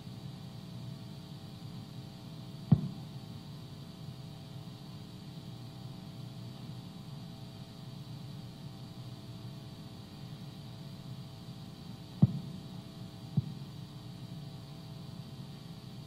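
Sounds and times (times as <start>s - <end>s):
low electrical hum: 0.0s - 16.0s
short thump: 2.7s - 3.0s.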